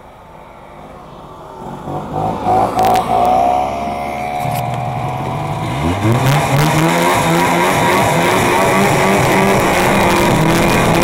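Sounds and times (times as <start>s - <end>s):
snowmobile engine accelerating: 1.5s - 11.0s.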